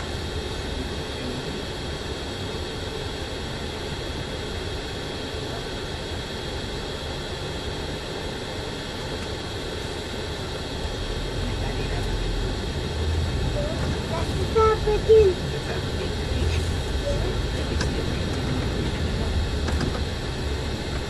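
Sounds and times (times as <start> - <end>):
bus engine and road noise: 0.0 - 21.0.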